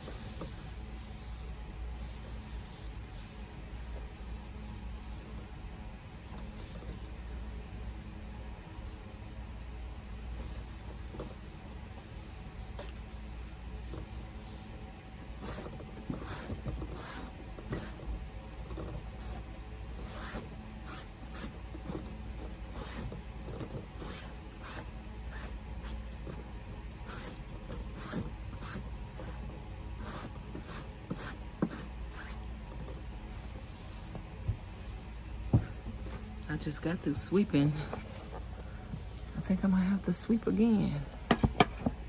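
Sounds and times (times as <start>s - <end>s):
lamp being handled and wiped: 0.0s - 5.6s, 27.1s - 36.4s
steady low hum: 0.0s - 42.0s.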